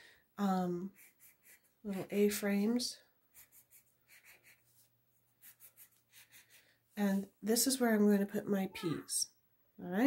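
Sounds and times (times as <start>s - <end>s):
pencil scratching on paper: 0.8s - 2.4s, 3.3s - 6.8s.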